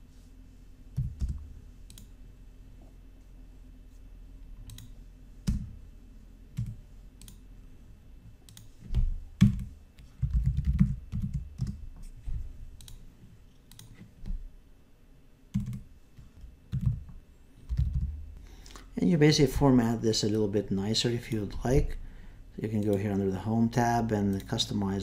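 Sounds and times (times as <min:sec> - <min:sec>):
mouse clicks: 0:01.9 - 0:02.1, 0:04.6 - 0:05.6, 0:06.6 - 0:07.4, 0:08.5 - 0:09.7, 0:12.8 - 0:13.0
typing on computer keyboard: 0:08.5 - 0:11.8, 0:15.5 - 0:15.9, 0:16.7 - 0:17.1, 0:17.7 - 0:18.2.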